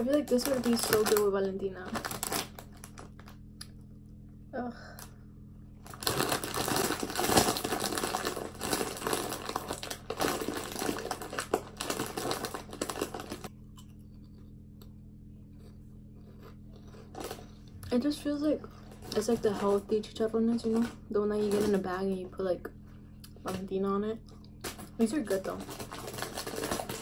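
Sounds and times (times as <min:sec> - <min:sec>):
plastic chip bag crinkling: 0:00.0 - 0:03.4, 0:05.8 - 0:13.5, 0:16.3 - 0:17.6, 0:18.8 - 0:22.1, 0:24.4 - 0:27.0.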